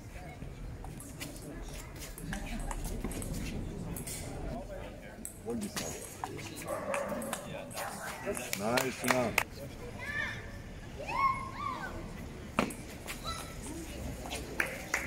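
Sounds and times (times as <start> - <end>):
dog barking: 6.7 - 8.0.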